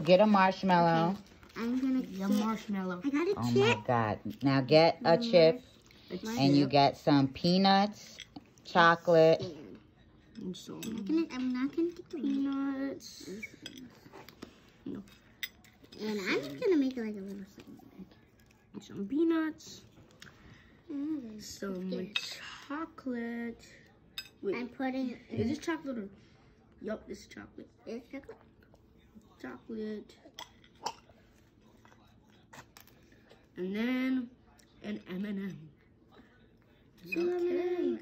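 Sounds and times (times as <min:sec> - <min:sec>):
faint room noise: 0:00.0 - 0:38.0.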